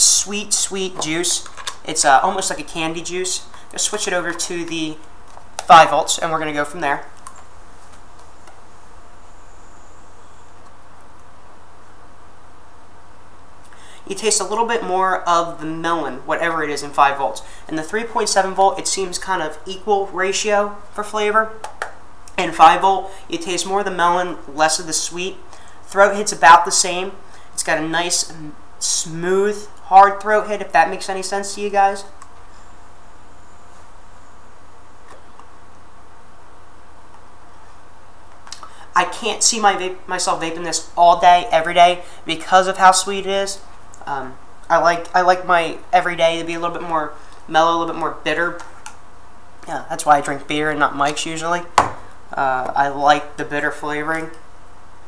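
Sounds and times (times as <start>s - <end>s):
faint hiss with low hum: 0.0s - 55.0s.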